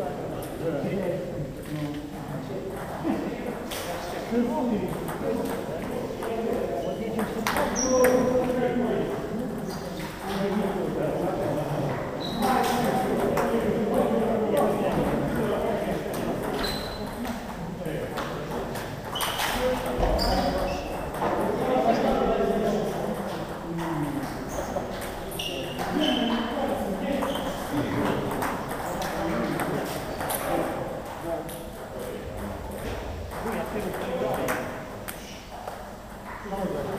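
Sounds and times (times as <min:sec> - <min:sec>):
people talking: 0:00.0 - 0:35.4, 0:36.4 - 0:36.9.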